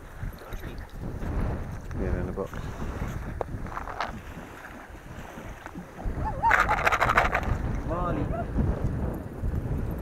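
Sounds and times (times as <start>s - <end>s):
faint shallow water washing: 0.0s - 10.0s
low wind rumble on microphone: 0.0s - 10.0s.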